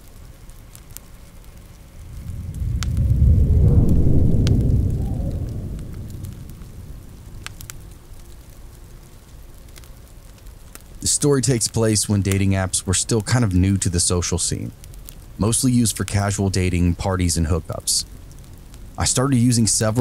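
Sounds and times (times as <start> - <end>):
wood fire crackling: 0.0 - 20.0
low rumble of thunder: 1.9 - 9.0.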